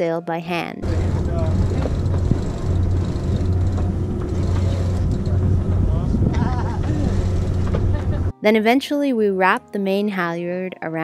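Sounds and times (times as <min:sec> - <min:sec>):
steady low drone: 0:00.8 - 0:08.3
wind buffeting microphone: 0:00.8 - 0:08.3.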